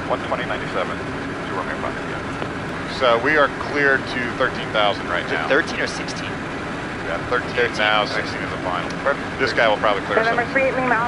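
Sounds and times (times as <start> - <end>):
air rushing over cockpit: 0.0 - 11.0
faint voices: 0.0 - 11.0
jet engine hum: 0.0 - 11.0.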